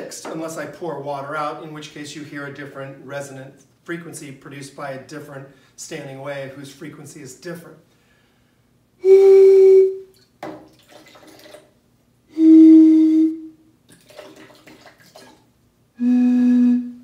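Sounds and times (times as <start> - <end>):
faint noisy breath sounds: 7.9 - 8.8
breath blown across bottle: 9.0 - 10.0, 12.3 - 13.5, 16.0 - 17.0.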